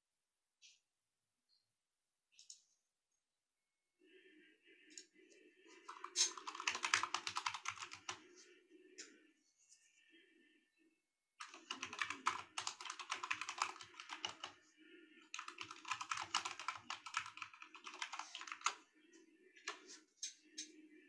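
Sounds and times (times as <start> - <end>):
rapid typing on keyboard: 5.9 - 8.2, 11.4 - 14.6, 15.3 - 18.8.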